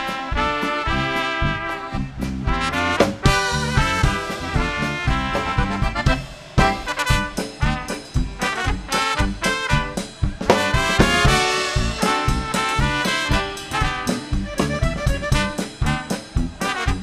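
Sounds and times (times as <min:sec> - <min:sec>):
polka band with brass: 0:00.0 - 0:17.0.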